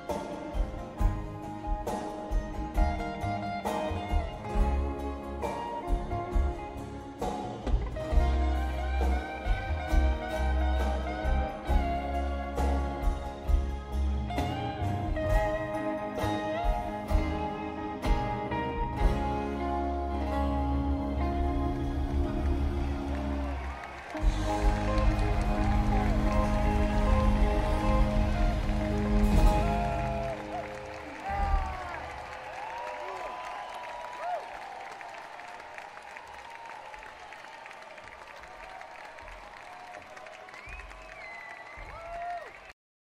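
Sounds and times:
live band closing chord: 0.0 - 32.3
audience applause and cheering: 0.0 - 42.8
whistles from audience: 39.7 - 42.7.

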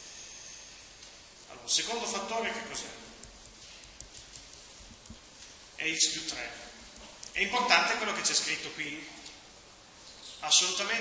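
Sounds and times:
steady background hiss: 0.0 - 11.0
stylus tapping on tablet screen: 3.2 - 5.3.

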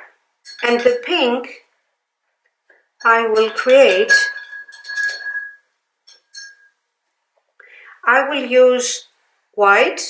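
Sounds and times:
glass ringing: 0.4 - 1.5, 3.0 - 6.8
paintbrush knocking glass jar: 0.5 - 1.3, 3.0 - 6.7.

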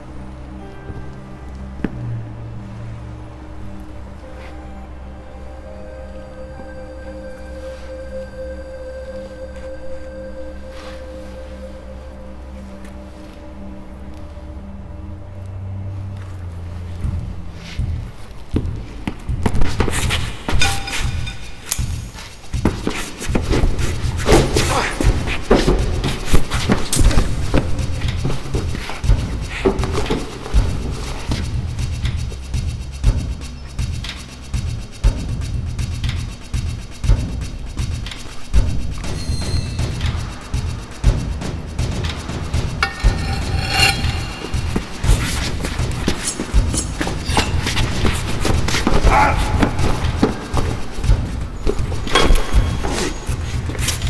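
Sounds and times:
action film score: 0.0 - 54.0.

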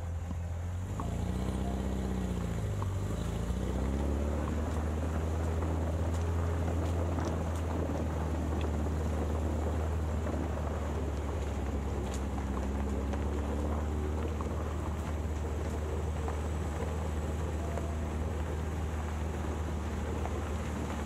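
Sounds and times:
small vehicle engine driving slowly: 0.0 - 21.0.

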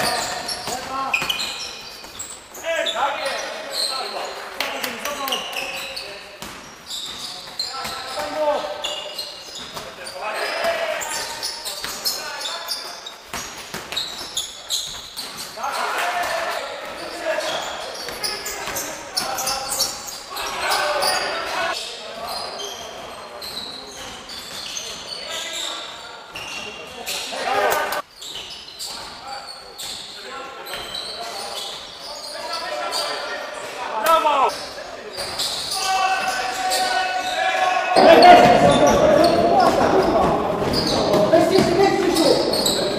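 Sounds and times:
players calling out: 32.2 - 42.9
basketball bouncing on wooden court: 38.1 - 42.9.

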